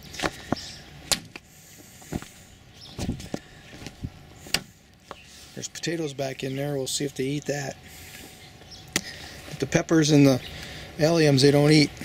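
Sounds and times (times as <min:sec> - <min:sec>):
faint outdoor background: 0:00.0 - 0:12.0.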